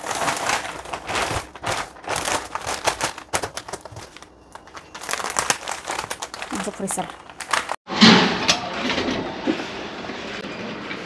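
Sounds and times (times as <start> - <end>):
plastic bags crinkling: 0.0 - 7.8.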